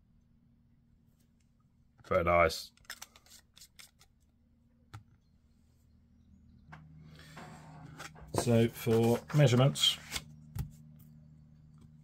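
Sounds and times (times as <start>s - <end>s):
pen rustling on desk mat: 7.8s - 10.8s.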